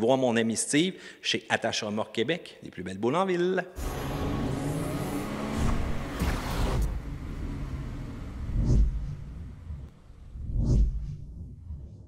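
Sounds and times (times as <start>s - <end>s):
low steady rumble: 6.7s - 11.6s
deep rumbling boom with whoosh: 8.4s - 12.0s.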